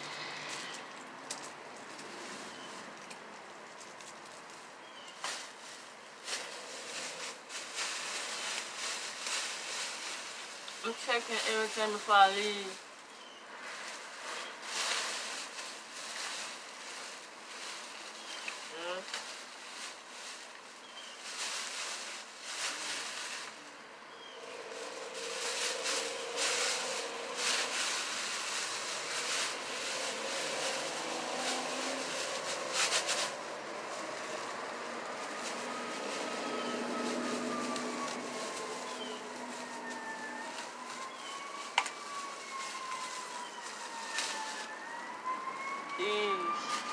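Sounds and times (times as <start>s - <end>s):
plastic bag rustling: 0.0s - 12.8s, 13.6s - 46.9s
distant siren wailing: 24.1s - 46.9s.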